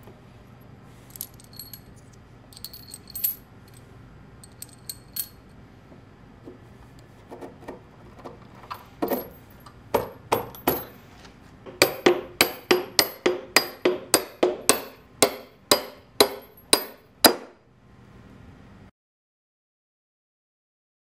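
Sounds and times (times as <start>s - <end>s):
hammer striking bolt: 10.0s - 11.0s, 11.7s - 17.6s.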